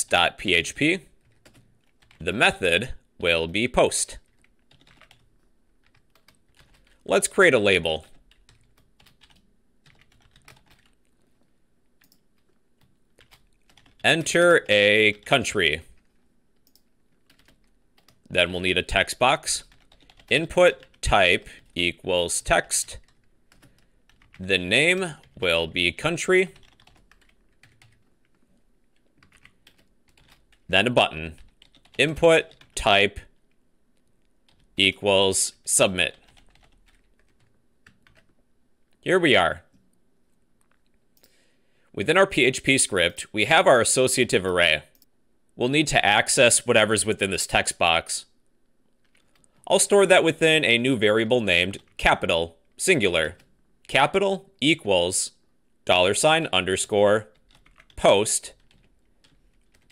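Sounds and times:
faint keyboard typing: 1.1 - 2.3, 4.2 - 7.1, 7.8 - 18.4, 19.6 - 21.8, 22.8 - 25.8, 26.4 - 30.7, 31.3 - 34.8, 36.0 - 39.0, 40.6 - 41.4, 48.9 - 49.7, 57.2 - 59.9.

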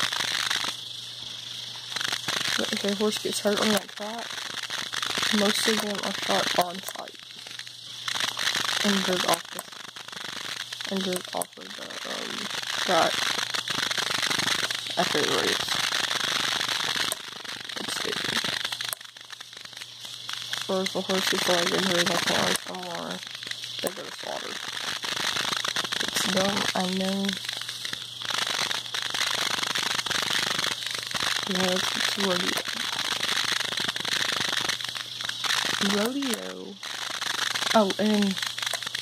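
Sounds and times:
crackling hiss: 0.0 - 39.0
person speaking: 2.6 - 4.3, 5.3 - 7.2, 8.8 - 9.6, 10.9 - 13.1, 14.9 - 15.8, 17.8 - 18.4, 20.7 - 23.2, 23.8 - 24.6, 26.0 - 27.4, 31.5 - 32.8, 35.8 - 36.8, 37.7 - 38.4.

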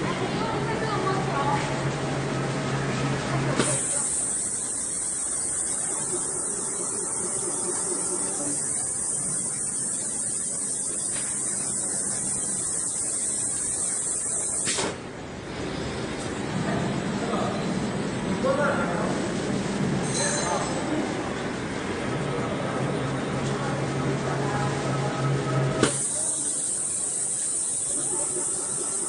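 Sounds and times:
compressed air hissing: 3.6 - 14.9, 25.8 - 29.0.

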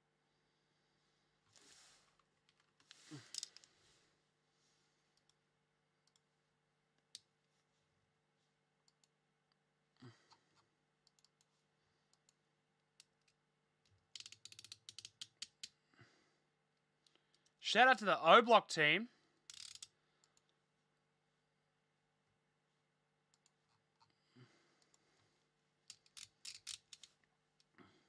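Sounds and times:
faint clicks: 11.0 - 11.5.

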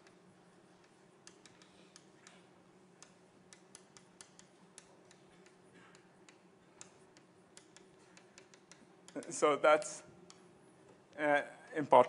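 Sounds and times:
faint irregular clicks: 0.8 - 9.4, 10.2 - 11.2.

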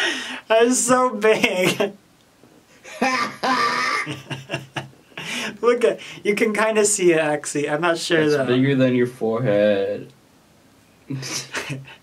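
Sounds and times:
man laughing: 2.8 - 5.6, 11.1 - 12.0.

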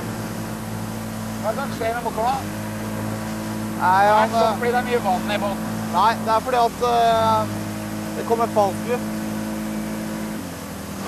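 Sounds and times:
outboard motor running: 0.0 - 11.0
wind: 0.0 - 11.0.

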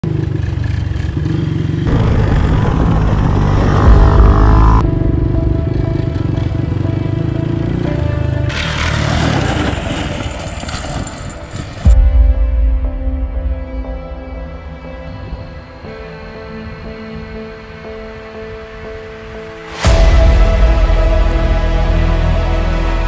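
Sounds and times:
atv engines running: 0.0 - 11.8
music playing: 1.9 - 23.0.

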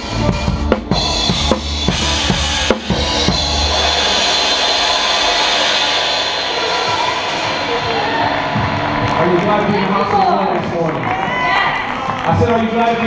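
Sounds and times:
drum hit: 0.6 - 9.9
sustained cymbal wash: 0.9 - 10.0.

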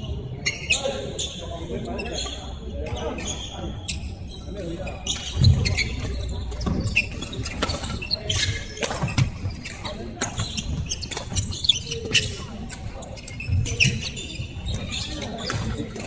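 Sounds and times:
racket hitting shuttlecock: 5.1 - 11.4.

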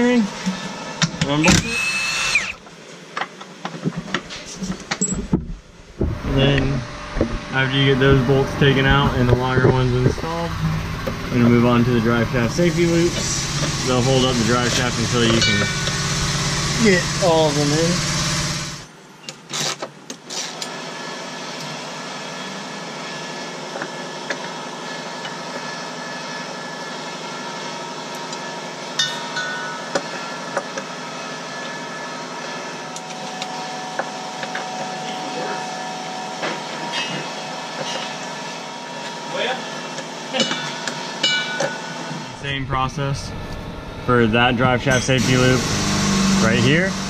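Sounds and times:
steady background hum: 0.0 - 18.0, 21.6 - 45.6.

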